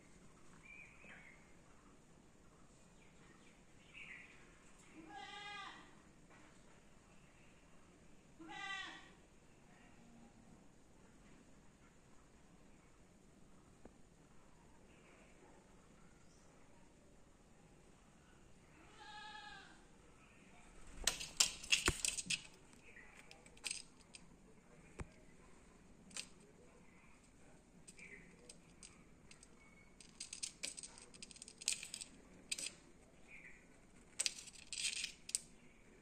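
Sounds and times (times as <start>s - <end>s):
bleat-like animal call: 5.1s - 5.9s, 8.4s - 9.1s, 18.8s - 19.8s.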